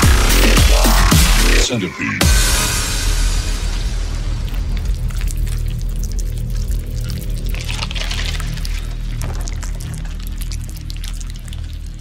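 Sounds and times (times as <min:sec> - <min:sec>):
electronic dubstep music: 0:00.0 - 0:04.4.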